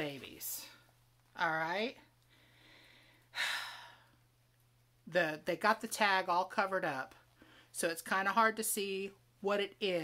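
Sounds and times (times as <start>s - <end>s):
woman sighing: 3.3s - 4.2s.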